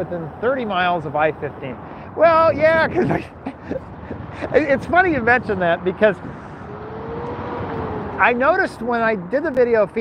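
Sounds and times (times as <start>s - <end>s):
freeway traffic rushing: 0.0s - 10.0s.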